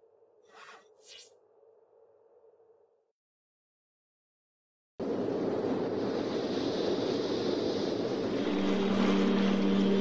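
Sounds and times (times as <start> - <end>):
wind-like rushing noise: 5.0 - 10.0
low musical drone: 8.3 - 10.0.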